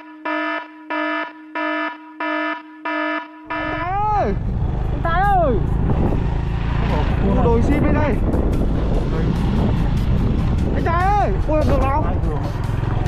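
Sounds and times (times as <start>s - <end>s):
motorcycle engine running: 3.5s - 13.0s
man calling out: 3.6s - 4.4s.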